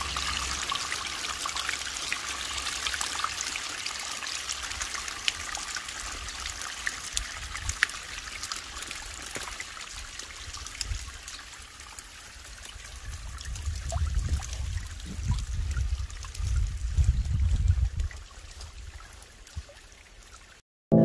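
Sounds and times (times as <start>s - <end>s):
water trickling and splashing: 0.0s - 20.6s.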